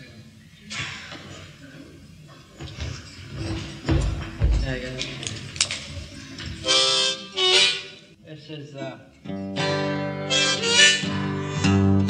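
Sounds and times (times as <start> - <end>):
heavy low thumps: 3.9 - 5.2
harmonica chord: 6.6 - 8.1, 9.3 - 12.0
acoustic guitar strumming: 9.2 - 12.0.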